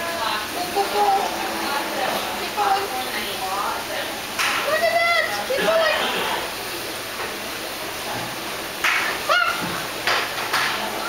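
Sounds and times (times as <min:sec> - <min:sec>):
child squealing: 0:09.3 - 0:09.7.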